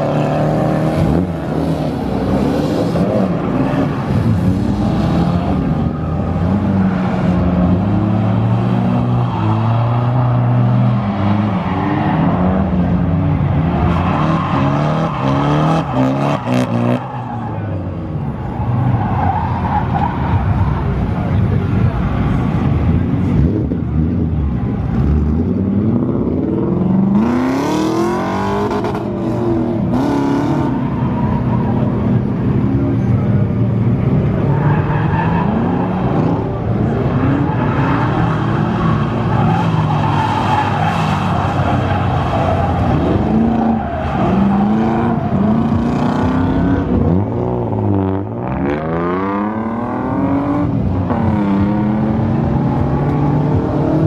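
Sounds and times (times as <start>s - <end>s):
car engine revving: 0.0s - 54.0s
tyres skidding: 0.0s - 54.0s.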